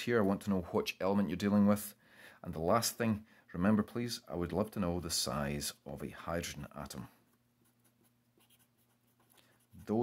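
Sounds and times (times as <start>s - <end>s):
pen scratching on paper: 7.6s - 10.0s.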